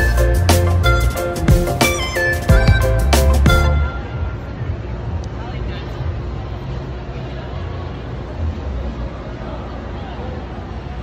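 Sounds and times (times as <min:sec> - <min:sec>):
traffic rumble: 0:00.1 - 0:11.0.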